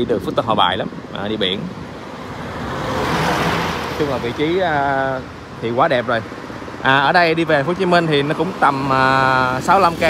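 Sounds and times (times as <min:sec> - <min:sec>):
truck passing on highway: 0:01.7 - 0:10.0.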